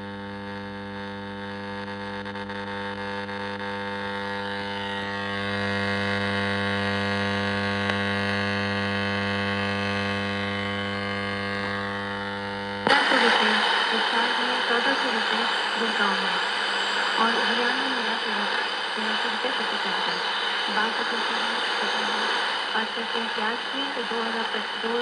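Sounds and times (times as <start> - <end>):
buzzing mains hum with hiss: 0.0 - 25.0.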